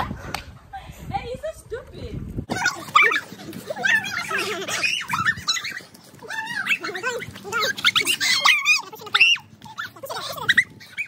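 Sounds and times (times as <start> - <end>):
young people squealing and laughing: 2.5 - 11.0.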